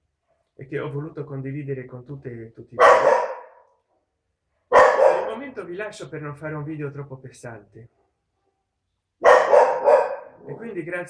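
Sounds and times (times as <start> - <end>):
dog barking: 2.8 - 3.8, 4.6 - 5.5, 9.2 - 10.5
man's voice: 5.0 - 7.9, 10.4 - 11.0.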